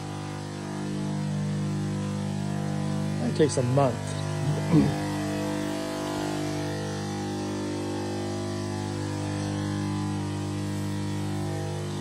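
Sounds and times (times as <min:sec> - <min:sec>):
electrical hum: 0:00.0 - 0:12.0.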